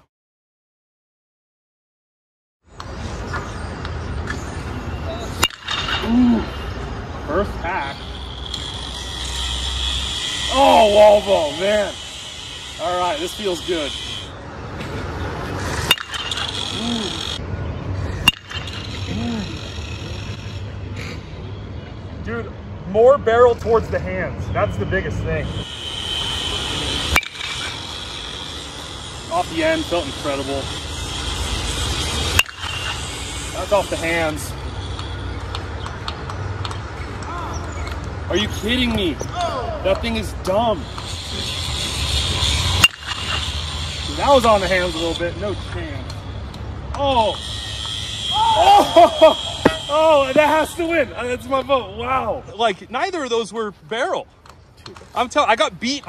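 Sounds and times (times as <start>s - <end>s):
metal bat hitting baseball: 5.3s - 6.2s, 15.8s - 17.2s, 18.2s - 19.1s, 26.9s - 28.2s, 31.8s - 34.3s, 42.7s - 43.6s, 48.9s - 49.9s.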